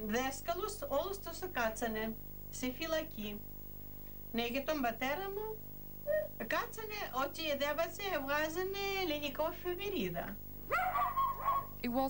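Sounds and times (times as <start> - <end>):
woman speaking: 0.0 - 3.4, 4.4 - 5.6, 6.2 - 10.4
dog barking and yelping: 10.7 - 11.8.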